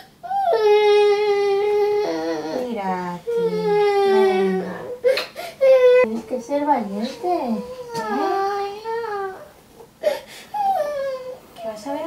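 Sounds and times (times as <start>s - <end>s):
young girl crying: 0.0s - 2.7s, 3.4s - 6.1s, 7.5s - 11.4s.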